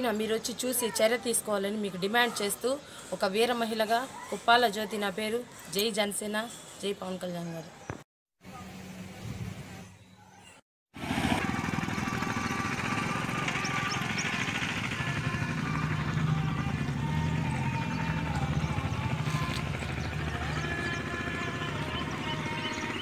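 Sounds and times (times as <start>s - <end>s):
small engine running: 11.0s - 23.0s.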